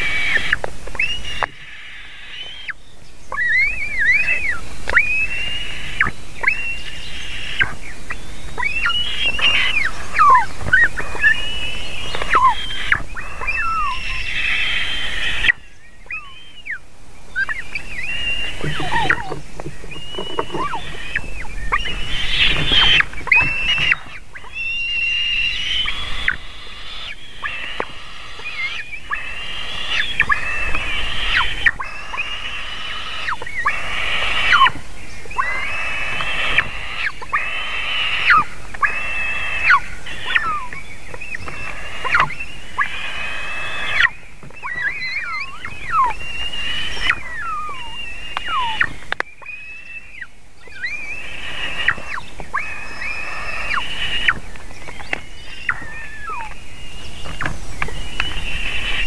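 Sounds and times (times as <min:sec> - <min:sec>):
eaglets squealing calls: 0:00.0 - 0:59.0.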